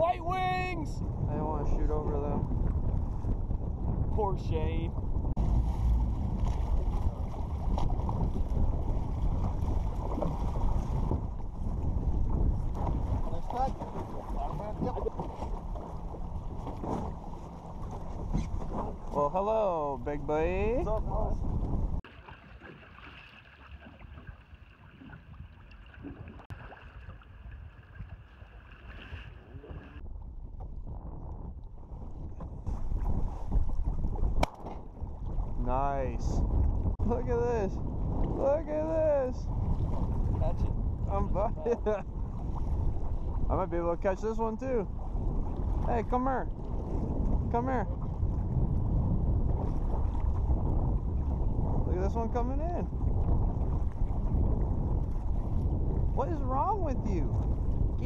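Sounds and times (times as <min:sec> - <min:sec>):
water slapping around boats: 0:00.0 - 0:30.0, 0:30.6 - 0:58.0
wind buffeting microphone: 0:00.0 - 0:58.0.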